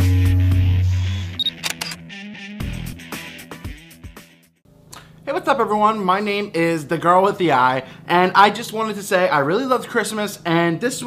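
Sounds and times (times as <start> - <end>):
heavy bass intro music: 0.0 - 4.5
camera shutter clicks: 1.4 - 2.0
short high beep: 1.4 - 2.0.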